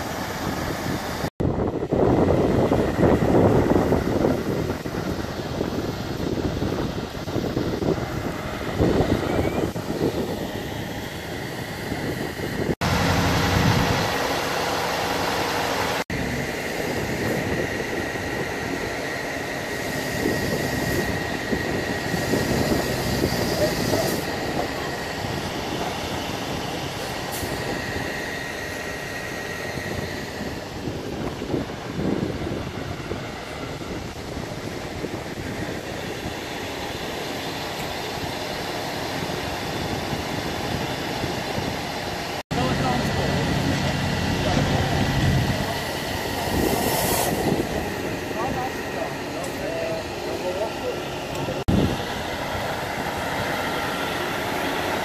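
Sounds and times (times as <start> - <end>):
fire truck engine running: 0.0 - 55.0.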